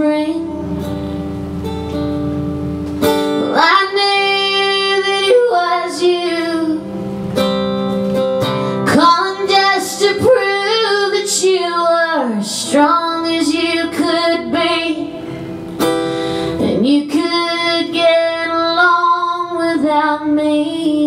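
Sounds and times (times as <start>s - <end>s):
woman singing: 0.0s - 0.9s, 3.4s - 6.9s, 8.8s - 15.4s, 16.5s - 21.0s
acoustic guitar: 0.0s - 21.0s.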